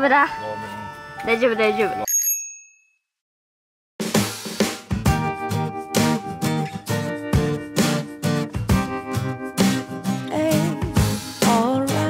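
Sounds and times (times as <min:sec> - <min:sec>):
high bell-like ding: 0:02.0 - 0:03.0.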